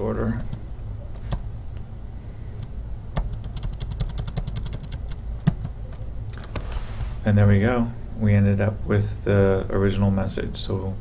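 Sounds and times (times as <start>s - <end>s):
low steady hum: 0.0s - 11.0s
keyboard typing: 0.3s - 1.5s, 2.6s - 6.1s.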